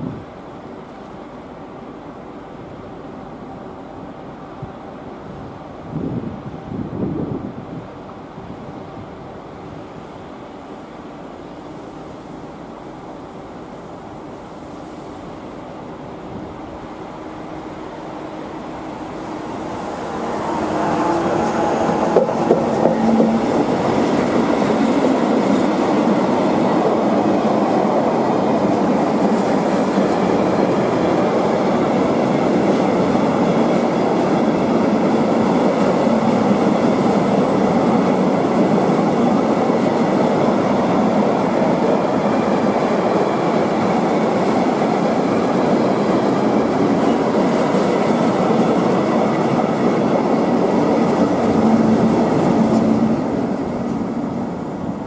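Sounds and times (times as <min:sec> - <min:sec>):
freight train rolling past: 0:00.0 - 0:55.0.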